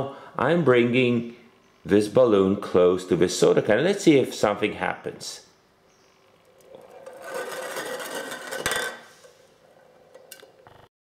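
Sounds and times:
can rolling across a table: 6.3s - 10.6s.

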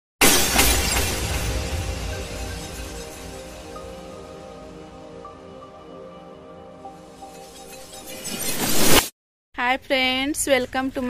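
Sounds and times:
glass shattering: 0.2s - 4.2s, 7.3s - 9.1s
background music: 0.5s - 9.0s.

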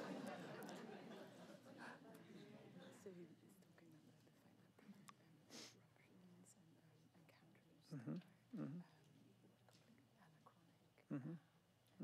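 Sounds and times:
woman half-whispering: 3.0s - 9.3s, 10.2s - 11.4s.

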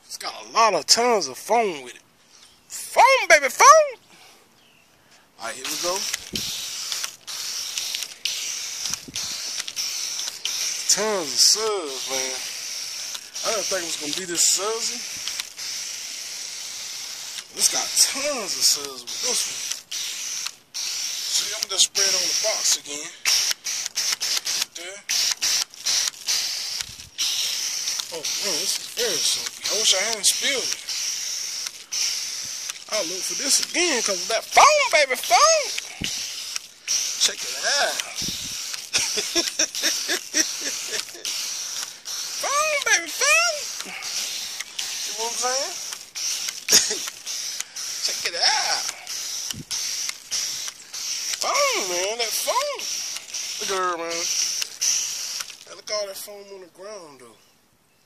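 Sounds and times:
foam gun spraying: 5.4s - 56.0s.

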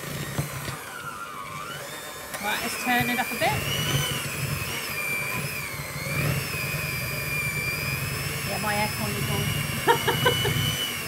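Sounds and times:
electric hand mixer whining: 0.0s - 11.0s.

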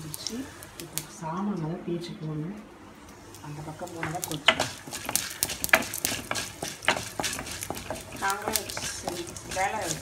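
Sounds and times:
frying in oil sizzle: 0.0s - 1.3s, 2.9s - 10.0s
spatula scraping metal pan: 4.4s - 10.0s.

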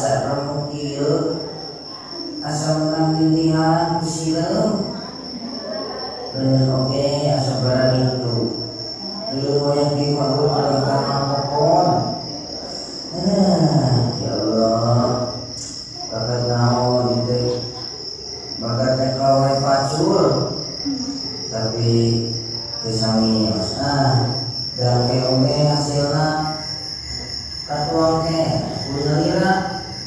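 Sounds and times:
man chanting over pa system: 0.0s - 30.0s.

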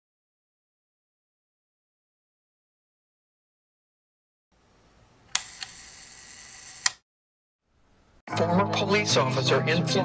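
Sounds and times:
sharp click: 5.3s - 5.8s, 6.8s - 7.0s.

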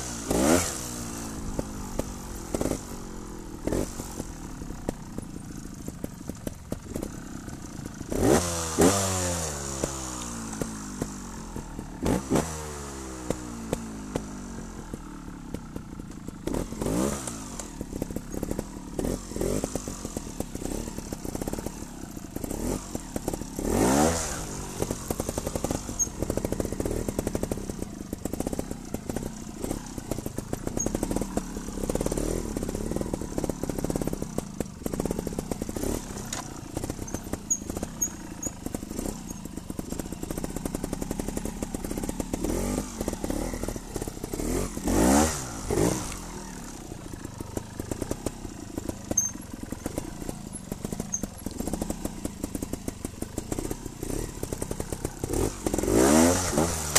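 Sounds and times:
motorcycle engine revving: 0.0s - 56.9s.

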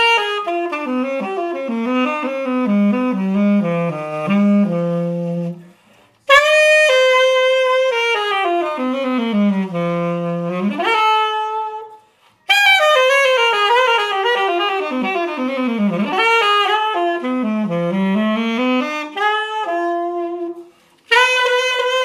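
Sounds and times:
solo alto saxophone: 0.0s - 22.0s.

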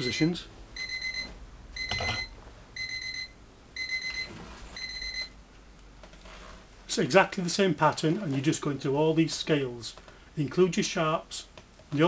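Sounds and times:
electronic alarm beeping: 0.0s - 5.4s.

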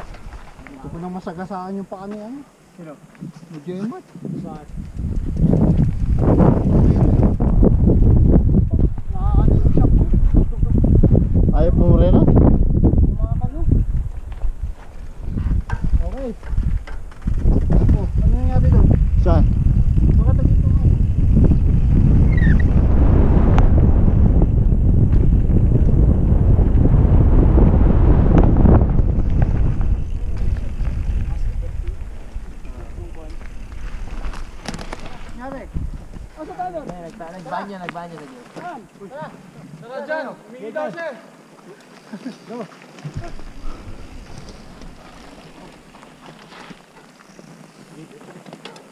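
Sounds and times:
wind rumbling on microphone: 0.0s - 1.8s, 3.1s - 39.8s, 43.0s - 48.9s
tyre noise on dirt trail: 0.0s - 48.9s
bike knocking over bumps: 14.0s - 18.2s, 32.2s - 37.3s, 42.9s - 48.9s
footsteps on gravel: 42.2s - 48.7s.

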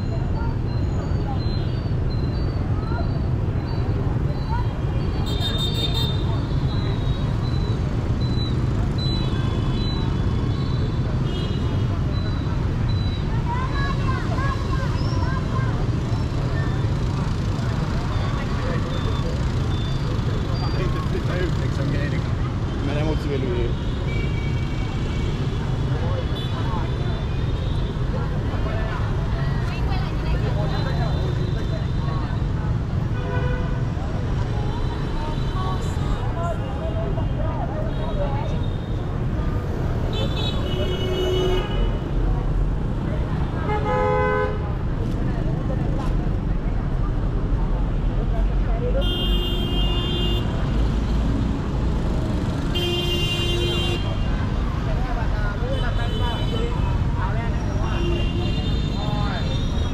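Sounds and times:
traffic and motorbikes rumble: 0.0s - 59.9s
people talking: 2.7s - 7.2s, 11.9s - 19.5s, 54.1s - 59.9s.

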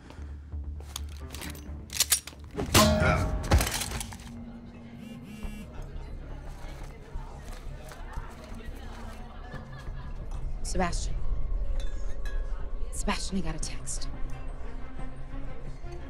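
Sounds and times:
low tense music: 0.0s - 16.0s.

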